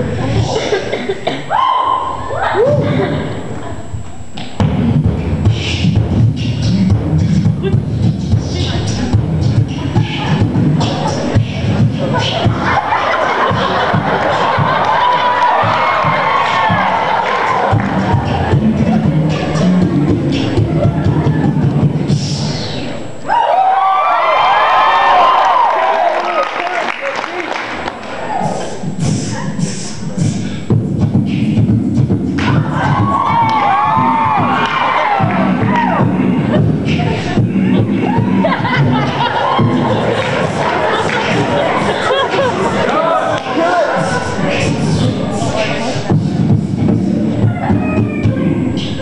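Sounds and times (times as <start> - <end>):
beatboxing into microphone: 0.0 - 23.2, 28.2 - 49.0
audience cheering and whooping: 1.5 - 3.2, 12.3 - 19.9, 23.2 - 28.7, 32.4 - 45.1.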